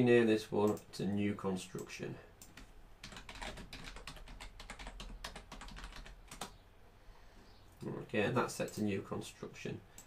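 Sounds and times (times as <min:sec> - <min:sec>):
computer keyboard typing: 0:02.4 - 0:06.6.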